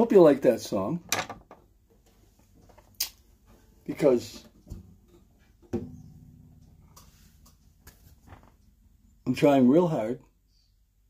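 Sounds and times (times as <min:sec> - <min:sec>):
guitar handling rustle: 0:01.9 - 0:08.8
guitar knock: 0:04.3 - 0:08.6.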